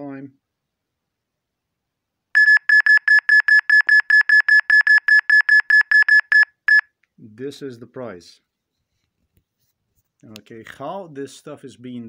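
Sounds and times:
short electronic alarm beeps: 0:02.4 - 0:06.9.

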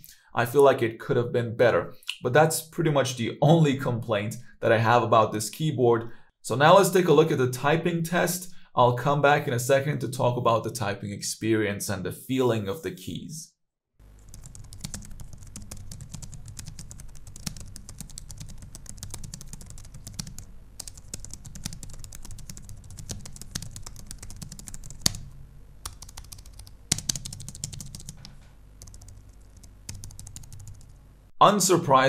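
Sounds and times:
fast keyboard typing: 0:14.2 - 0:31.0.

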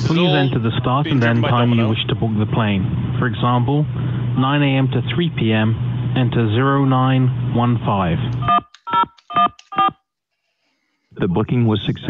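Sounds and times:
touch-tone keypad beeps: 0:08.4 - 0:09.9.

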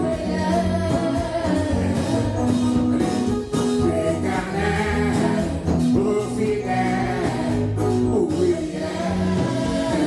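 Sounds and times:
woman singing into a microphone: 0:00.0 - 0:05.9
congregation singing: 0:00.0 - 0:10.0
instrumental backing: 0:00.0 - 0:10.0.

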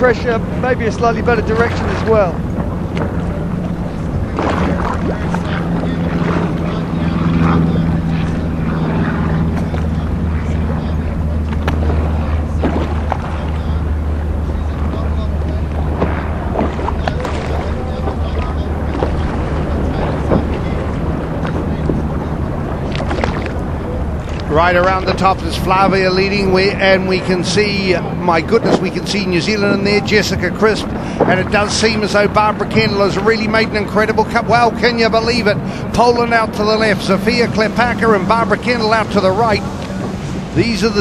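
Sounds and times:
low engine drone: 0:00.0 - 0:41.0
water noise: 0:00.0 - 0:41.0
wind: 0:00.0 - 0:41.0.

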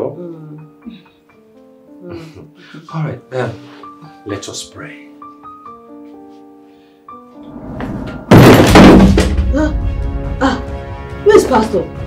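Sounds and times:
loud heavy hit: 0:07.5 - 0:09.7
deep rumble: 0:07.5 - 0:09.8.

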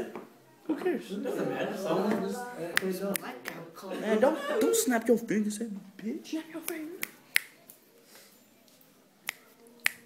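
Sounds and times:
fingers snapping: 0:06.7 - 0:07.8, 0:09.2 - 0:10.0.

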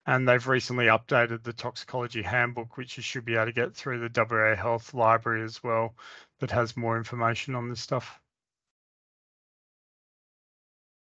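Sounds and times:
person speaking: 0:00.0 - 0:08.1.

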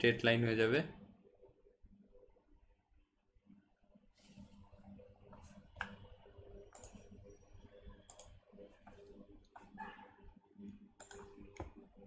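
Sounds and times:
faint clicks and taps: 0:10.6 - 0:11.9.

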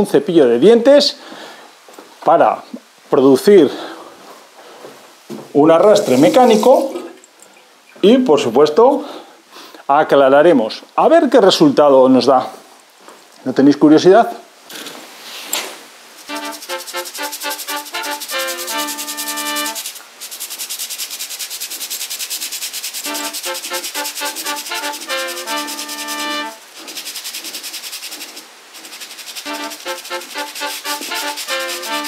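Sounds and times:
toothbrush scrubbing tile grout: 0:05.9 - 0:07.0, 0:16.2 - 0:32.0
background music: 0:16.3 - 0:19.8, 0:23.1 - 0:26.6, 0:29.5 - 0:32.0.

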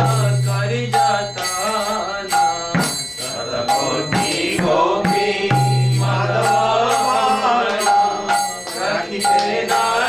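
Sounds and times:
man singing: 0:00.0 - 0:08.2.

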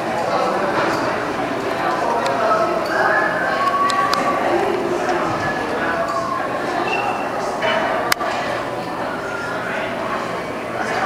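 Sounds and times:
background chatter: 0:00.0 - 0:11.0
large indoor room noise: 0:00.0 - 0:11.0.

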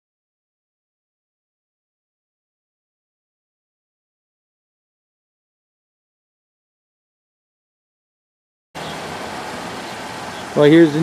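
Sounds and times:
steady outdoor background hiss: 0:08.8 - 0:11.0.

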